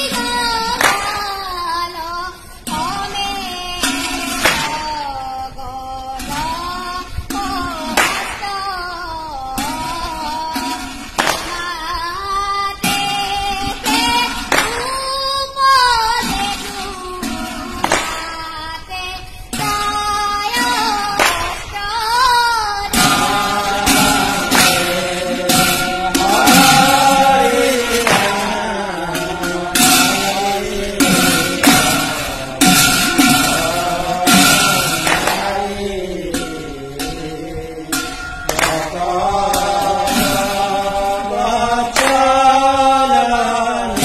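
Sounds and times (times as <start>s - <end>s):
boy singing devotional chant: 0.0s - 44.0s
brass hand cymbals clashing: 22.8s - 44.0s.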